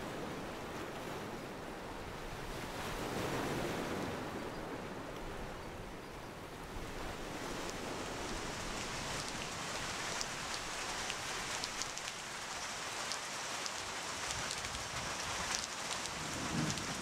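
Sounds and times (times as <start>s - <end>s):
rain hissing: 7.6s - 17.0s
sharp raindrop ticks: 8.7s - 17.0s.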